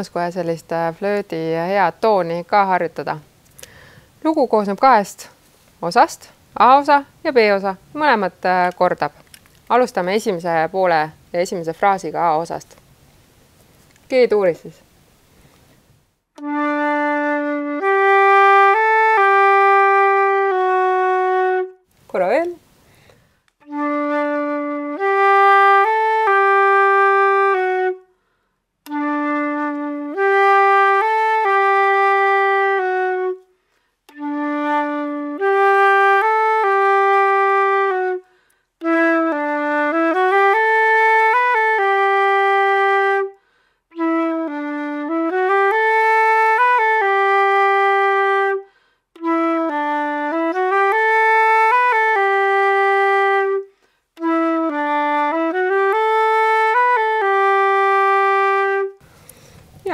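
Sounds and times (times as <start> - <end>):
flute playing waltz phrase: 16.4 - 21.8, 23.6 - 28.0, 28.9 - 33.5, 34.1 - 43.4, 44.0 - 59.0.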